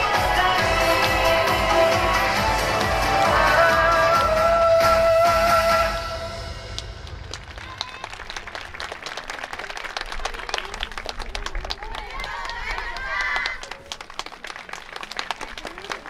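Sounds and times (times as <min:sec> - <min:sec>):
audience applause: 0:06.7 - 0:16.0.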